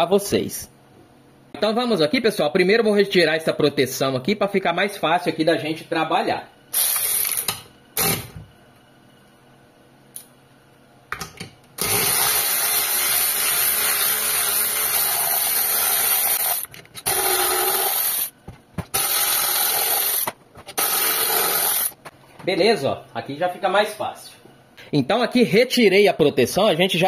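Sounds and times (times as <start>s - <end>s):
cordless electric ratchet running: 11.8s - 18.3s, 18.9s - 22.0s.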